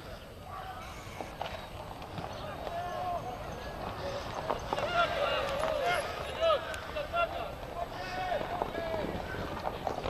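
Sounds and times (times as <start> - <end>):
outdoor background noise: 0.0 - 10.0
players shouting calls: 0.4 - 9.5.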